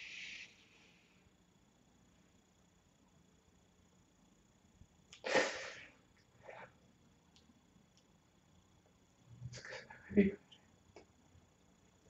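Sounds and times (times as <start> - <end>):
person sneezing: 5.2 - 5.9.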